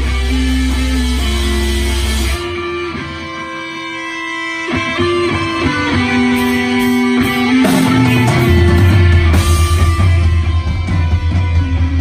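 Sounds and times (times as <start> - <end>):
electric guitars ringing: 0.0 - 12.0
live rock band playing: 0.0 - 12.0.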